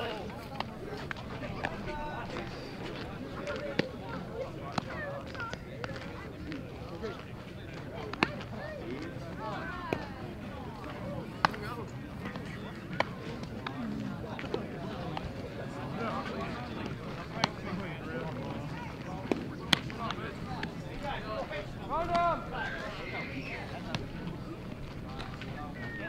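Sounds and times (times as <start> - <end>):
indistinct chatter of voices: 0.0 - 26.0.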